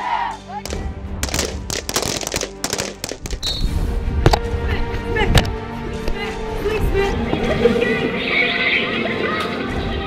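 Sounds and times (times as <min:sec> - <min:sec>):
rifle shots: 0:00.7 - 0:03.6.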